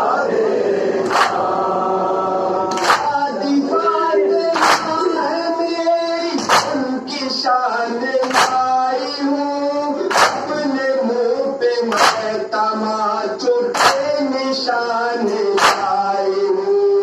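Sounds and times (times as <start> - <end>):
men chanting in unison: 0.0 - 17.0
chest-beating slaps: 1.0 - 1.5, 2.7 - 3.1, 4.6 - 5.1, 6.4 - 6.9, 8.2 - 8.8, 10.0 - 10.6, 11.9 - 12.4, 13.8 - 14.1, 15.6 - 16.0.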